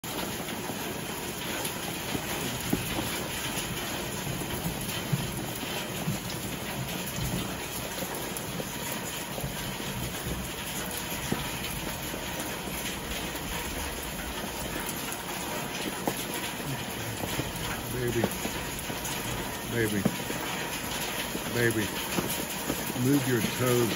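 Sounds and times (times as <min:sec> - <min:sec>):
steady rain hiss: 0:00.1 - 0:23.9.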